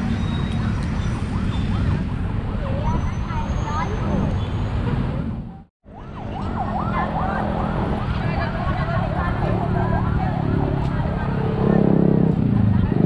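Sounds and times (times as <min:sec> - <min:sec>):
heavy wind: 0:00.0 - 0:13.0
traffic rumble: 0:00.0 - 0:13.0
siren wailing: 0:00.6 - 0:02.7, 0:05.8 - 0:11.8.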